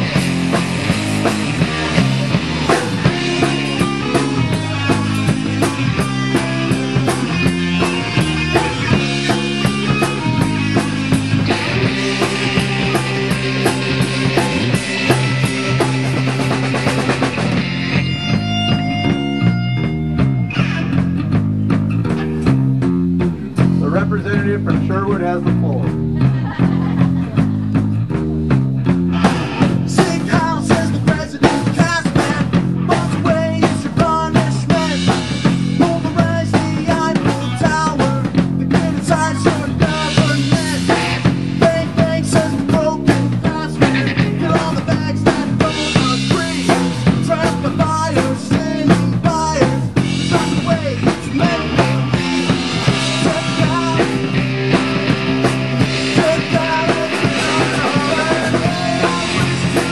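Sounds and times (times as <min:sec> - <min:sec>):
bass guitar: 0:00.0 - 0:59.9
bending guitar melody: 0:00.0 - 0:59.9
distorted electric guitars: 0:00.0 - 0:59.9
drum kit beat: 0:00.0 - 0:59.9.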